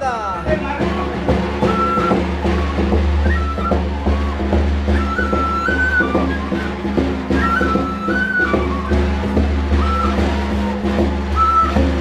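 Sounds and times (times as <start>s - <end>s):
frame drums beaten with sticks: 0.4s - 12.0s
wooden flute short high notes: 1.3s - 12.0s.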